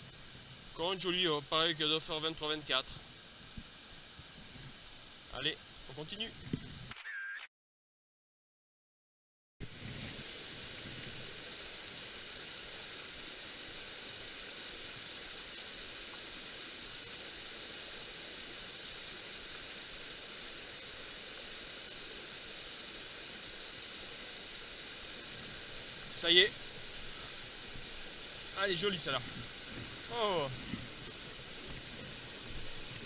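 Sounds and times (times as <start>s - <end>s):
small waterfall rushing: 0.0s - 6.5s, 9.6s - 33.0s.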